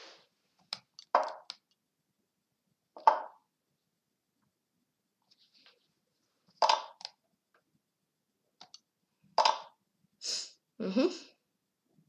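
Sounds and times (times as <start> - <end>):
computer chess move clicks: 0.6 - 1.7, 3.0 - 3.4.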